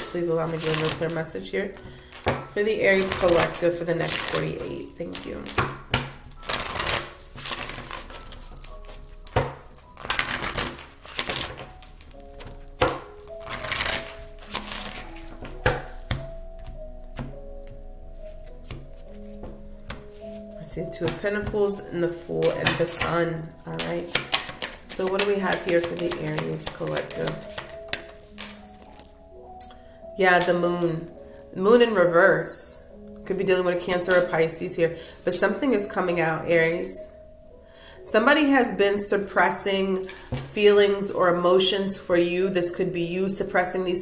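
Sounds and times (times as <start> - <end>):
soft background music: 0.0 - 44.0
cards being shuffled: 6.4 - 17.4, 23.7 - 29.1
cards clicking: 23.7 - 29.1.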